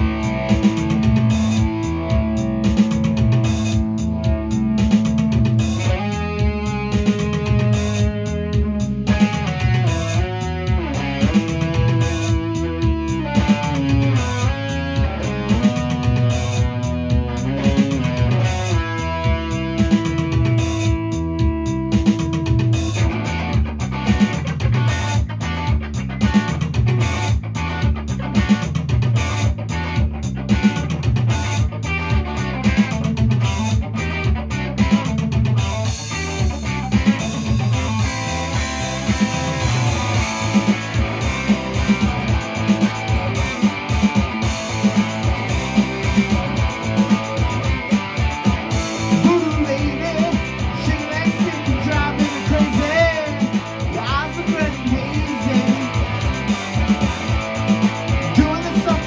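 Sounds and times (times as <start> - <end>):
bass line: 0.0 - 59.0
electric guitar lead: 0.0 - 59.0
steady beat: 0.0 - 59.0.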